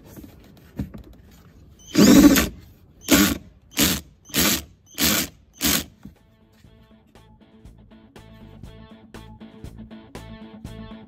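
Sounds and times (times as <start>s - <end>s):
ratchet rasping strokes: 1.8s - 5.9s.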